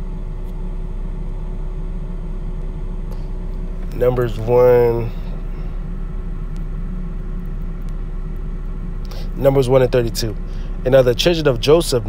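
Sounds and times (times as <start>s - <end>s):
faint hum: 0.0s - 12.0s
low background rumble: 0.0s - 12.0s.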